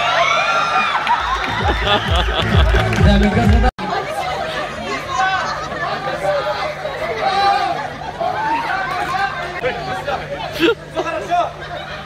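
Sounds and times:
audience talking: 0.8s - 12.0s.

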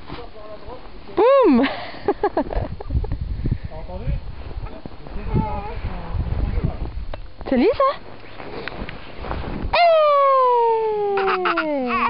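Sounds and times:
toddler wailing: 11.1s - 12.0s.

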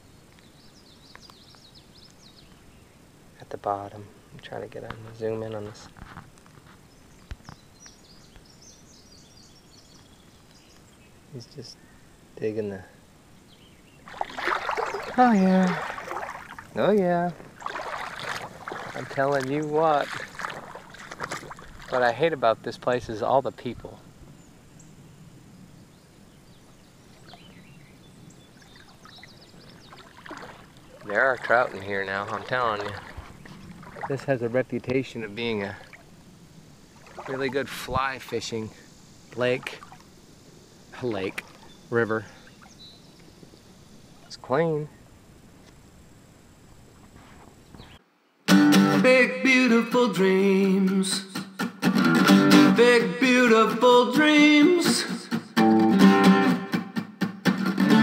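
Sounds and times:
low steady background hush: 0.0s - 48.4s
songbird singing: 0.0s - 51.6s, 52.7s - 56.2s
quiet outdoor ambience: 0.0s - 57.4s.

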